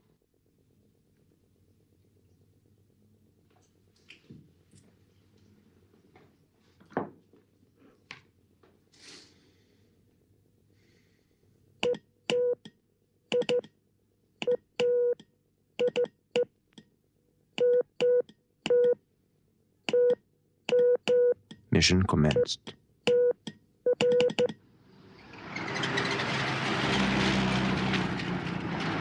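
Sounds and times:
morse code beeps: 0:19.9 - 0:24.5.

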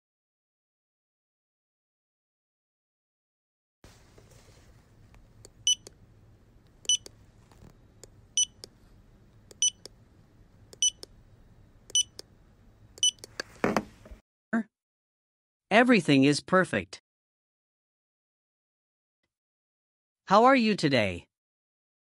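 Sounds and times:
fingerprint scanner beeps: 0:05.6 - 0:05.9, 0:06.8 - 0:07.1, 0:08.4 - 0:08.7, 0:09.5 - 0:09.9, 0:10.8 - 0:11.1, 0:11.9 - 0:12.2, 0:13.0 - 0:13.3.

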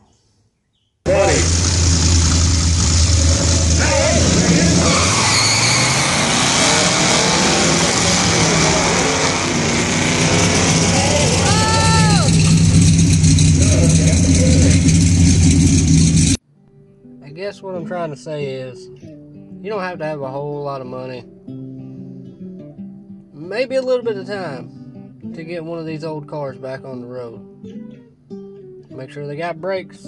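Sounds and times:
person calling out: 0:01.1 - 0:01.6, 0:10.9 - 0:12.4
racing car engines: 0:01.1 - 0:16.4.

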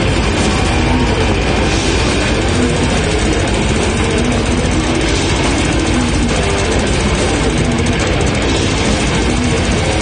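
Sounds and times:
distorted guitars: 0:00.0 - 0:10.0
fast dense drumming: 0:00.0 - 0:10.0.

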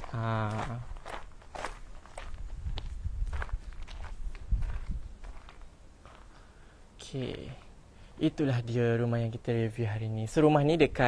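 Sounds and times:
footsteps on loose gravel: 0:00.0 - 0:06.3.

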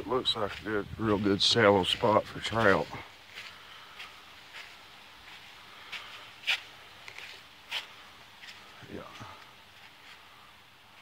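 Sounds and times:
faint steady background noise: 0:00.0 - 0:11.0.

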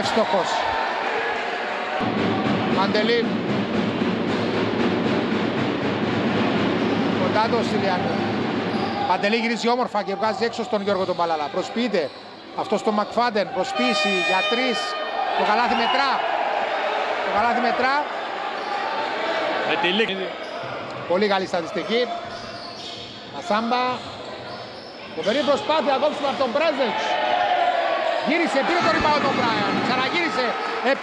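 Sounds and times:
arena crowd noise: 0:00.0 - 0:31.0.

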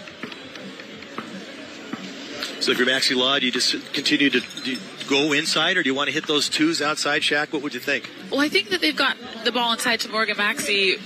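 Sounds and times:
faint background music: 0:00.0 - 0:11.0
outdoor court ambience: 0:00.0 - 0:11.0.

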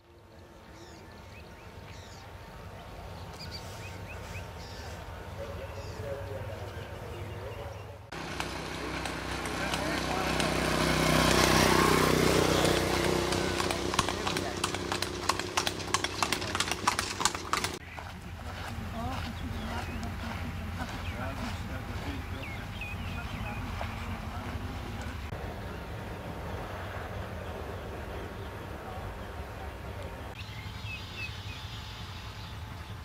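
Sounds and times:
cart rumbling on paved road: 0:00.0 - 0:33.0
outdoor background: 0:00.0 - 0:33.0
hoof clip-clops: 0:08.1 - 0:25.4.

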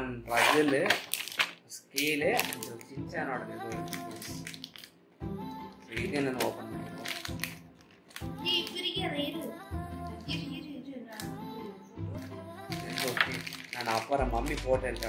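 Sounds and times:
music with melodic vocals and bass: 0:02.2 - 0:04.6, 0:05.2 - 0:15.0.

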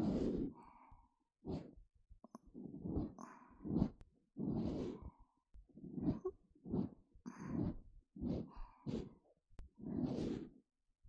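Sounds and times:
ear-cleaning tool rubbing ear: 0:09.8 - 0:10.6.

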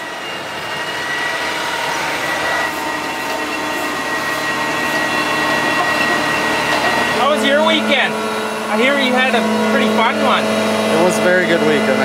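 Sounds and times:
high-pitched whine: 0:00.0 - 0:12.0
tractor engine and tracks: 0:00.0 - 0:12.0.

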